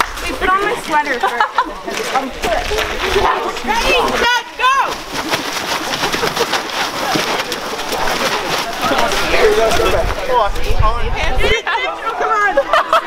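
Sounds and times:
quick rustles: 0.0 - 10.8
group shouting: 3.7 - 5.0.

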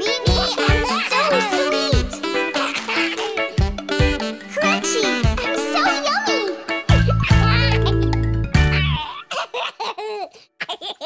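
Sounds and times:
cartoon voices laughing: 2.5 - 3.6, 6.9 - 11.0.

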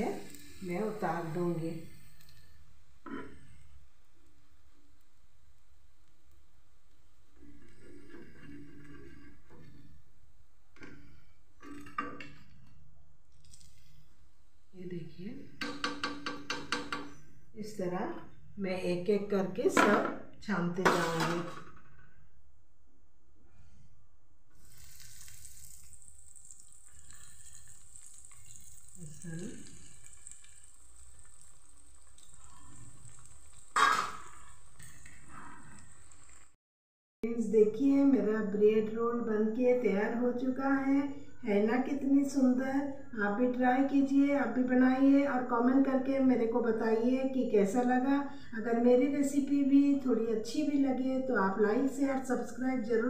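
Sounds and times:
bread frying in hot oil: 24.6 - 36.6.

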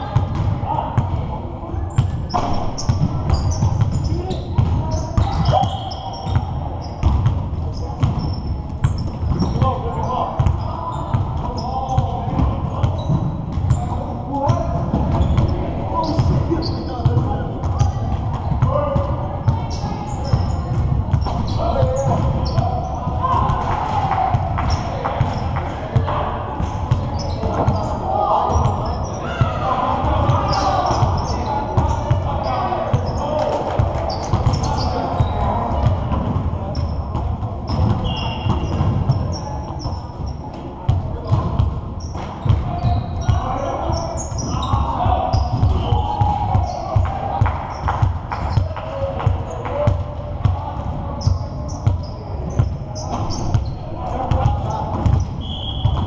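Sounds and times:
players calling out: 0.4 - 56.0
basketballs bouncing on hardwood: 33.7 - 39.3.

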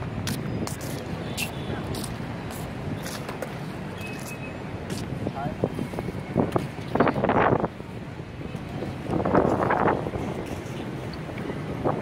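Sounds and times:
skateboard wheels rolling on pavement: 0.0 - 12.0.

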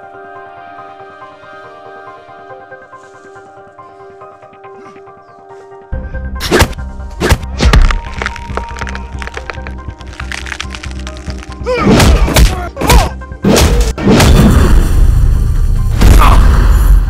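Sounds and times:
background music: 0.0 - 17.0
punch and kick impacts: 11.7 - 15.0.

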